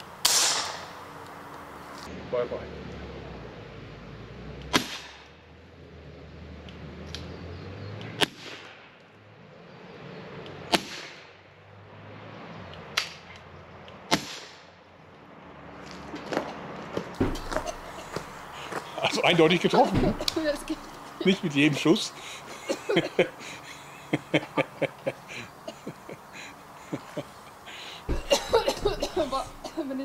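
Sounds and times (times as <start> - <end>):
pepper gun cracks with echo: 0.2 - 1.1, 4.7 - 5.3, 14.1 - 14.7.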